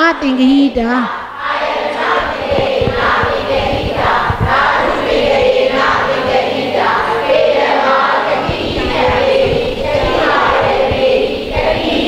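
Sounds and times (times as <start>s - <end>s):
group chanting in unison: 0.2s - 12.0s.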